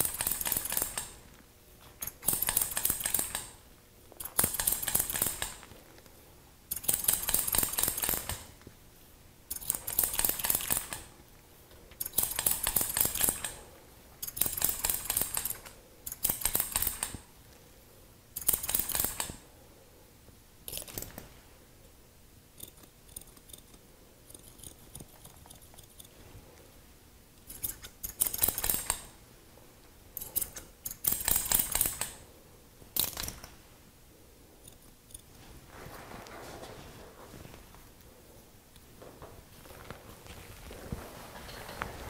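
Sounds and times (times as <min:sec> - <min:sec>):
scissors snipping hair: 0:22.6 - 0:26.2.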